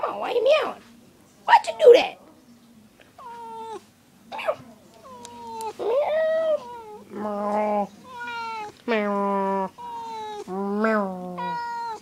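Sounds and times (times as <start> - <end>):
cat meowing: 3.2 - 3.8, 5.0 - 12.0.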